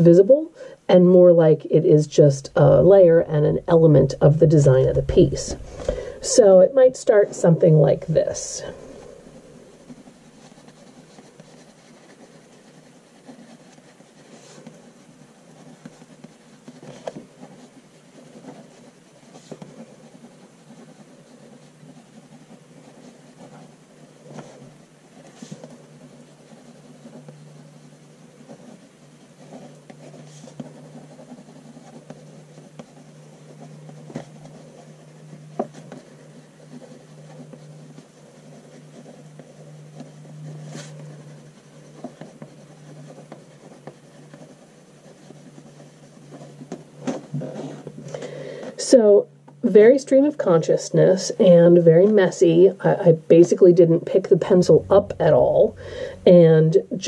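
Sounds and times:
pencil scratching on paper: 2.6 - 57.0
low hum: 53.6 - 57.0.

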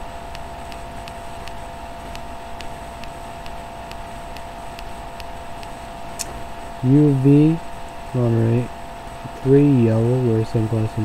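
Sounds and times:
steady hum and hiss: 0.0 - 11.0
sharp click: 0.3 - 6.4.

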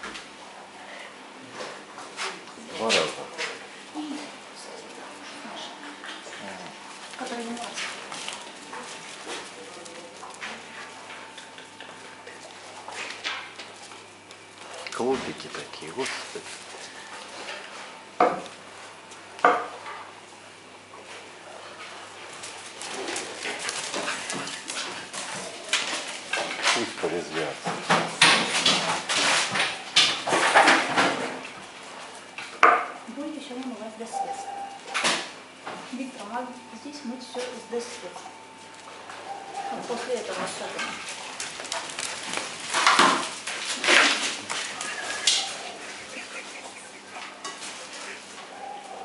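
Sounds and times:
bear cubs scuffling on tiles: 1.5 - 19.4, 20.8 - 35.0, 35.7 - 49.0.

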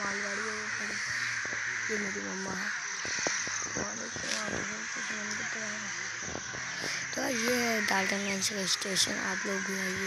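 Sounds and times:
indistinct voices: 0.0 - 10.0.

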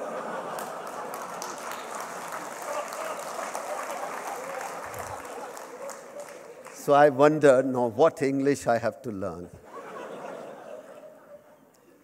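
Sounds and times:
audience laughing: 0.0 - 6.8, 9.6 - 12.0
audience clapping: 0.0 - 7.3.

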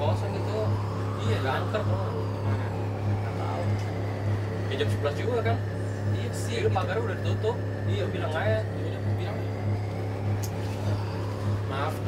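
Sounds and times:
motor humming: 0.0 - 12.0.

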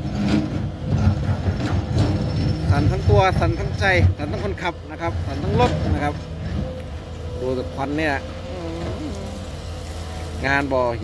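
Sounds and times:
knocks and grinding: 0.0 - 9.2
excavator diesel engine rumble: 0.0 - 11.0.

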